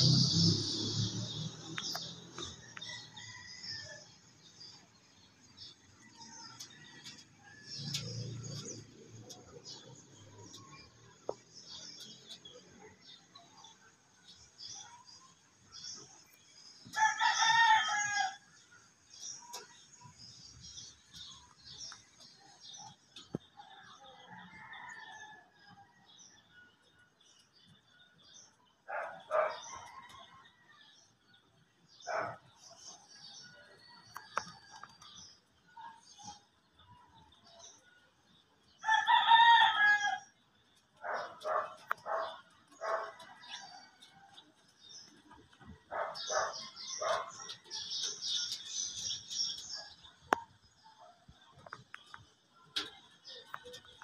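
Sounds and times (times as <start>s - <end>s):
rooster crowing: 38.8s - 40.3s
bird calls: 41.0s - 54.0s.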